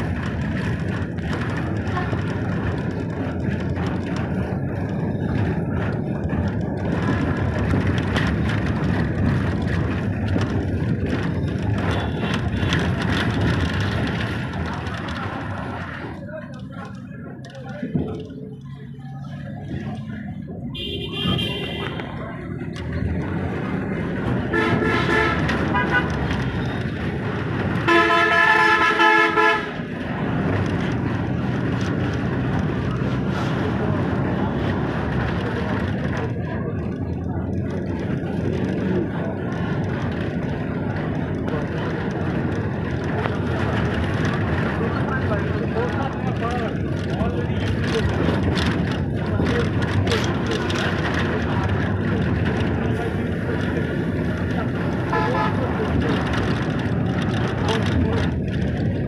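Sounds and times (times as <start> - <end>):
road traffic noise: 0.0 - 59.0
vehicle horn blasts: 20.8 - 22.0, 27.9 - 29.7.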